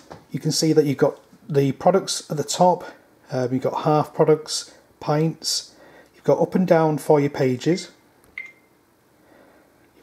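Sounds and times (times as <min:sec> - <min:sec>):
short high beep: 0:08.4 - 0:08.7.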